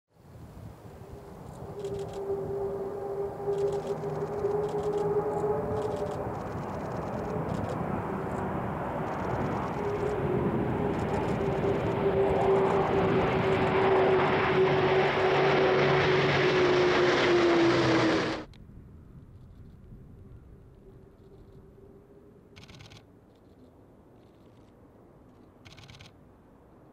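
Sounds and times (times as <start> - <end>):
propeller hum: 0.3 - 26.9
rushing engine noise: 0.9 - 18.6.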